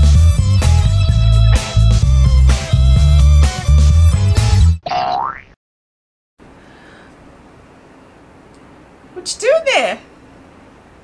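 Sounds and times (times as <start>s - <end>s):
upbeat music with bass and guitar: 0.0s - 4.8s
cartoon boing sound effect: 4.8s - 5.6s.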